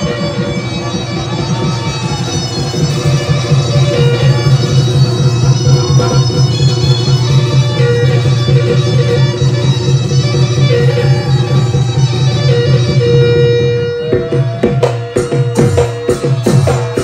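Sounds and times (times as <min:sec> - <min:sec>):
live band music: 0:00.0 - 0:17.0
steady bass: 0:00.0 - 0:17.0
wind-like lead melody: 0:00.0 - 0:17.0.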